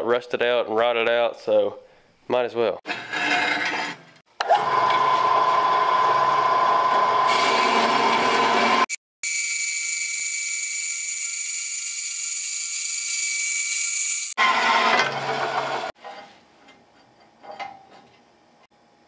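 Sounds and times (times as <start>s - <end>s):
bandsaw cutting steel: 2.9s - 9.0s
high-pitched blade whine: 9.2s - 14.4s.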